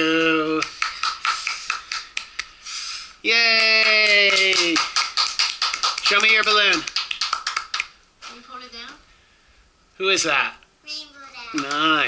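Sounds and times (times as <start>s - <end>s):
people clapping: 0.5s - 2.5s, 3.4s - 8.0s, 11.5s - 12.0s.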